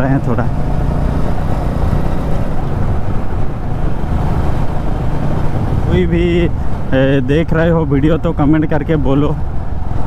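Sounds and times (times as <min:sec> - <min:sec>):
motorcycle engine running: 0:00.0 - 0:05.9
low rumble of riding noise: 0:00.0 - 0:10.0.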